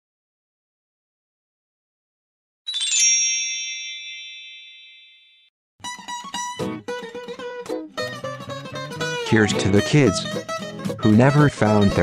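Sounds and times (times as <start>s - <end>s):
bright chime ding: 2.7s - 5.5s.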